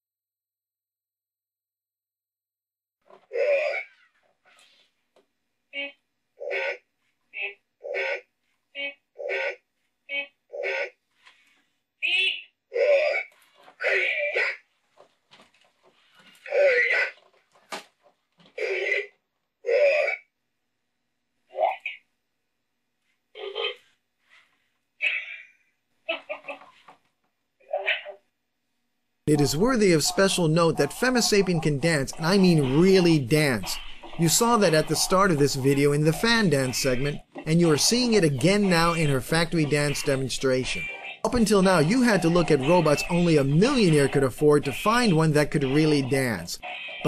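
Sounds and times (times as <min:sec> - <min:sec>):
toy robots electronic vocal sounds: 0:05.8 - 0:11.0, 0:12.0 - 0:14.6, 0:29.3 - 0:47.0.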